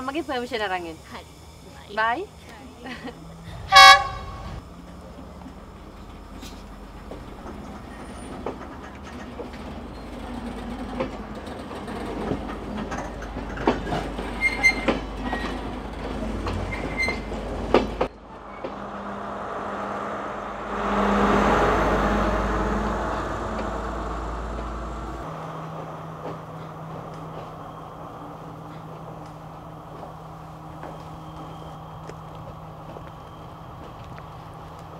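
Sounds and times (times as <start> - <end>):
passenger train rumbling: 0.0 - 34.9
train wheels clicking over rail joints: 4.8 - 18.9.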